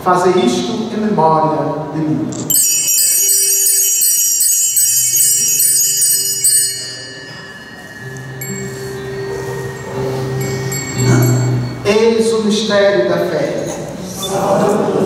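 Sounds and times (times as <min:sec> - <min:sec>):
small altar bells shaken: 0:02.3 - 0:12.0.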